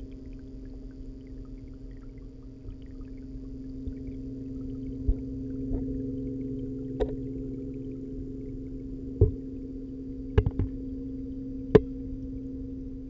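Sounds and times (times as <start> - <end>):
aquarium pumps humming underwater: 0.0 - 13.0.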